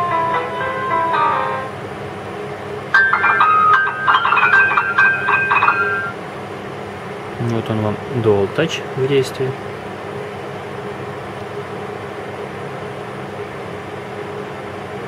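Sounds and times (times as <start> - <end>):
piano notes from phone speaker: 0.0 - 1.8, 3.0 - 6.2.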